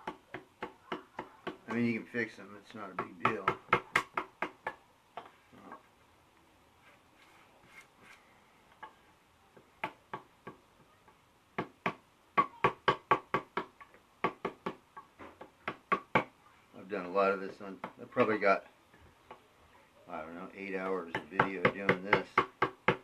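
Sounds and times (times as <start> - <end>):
mallet tapping wood chisel: 0.0 - 1.8, 3.0 - 5.3, 11.6 - 16.3, 21.1 - 23.0.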